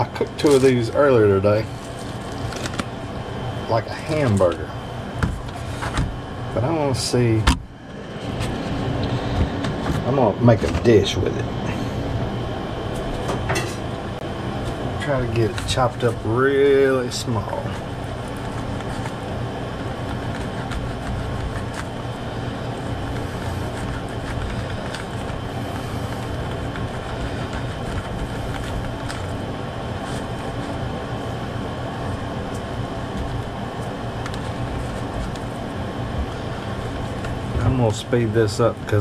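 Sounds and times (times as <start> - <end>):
fan whirring: 0.0 - 39.0.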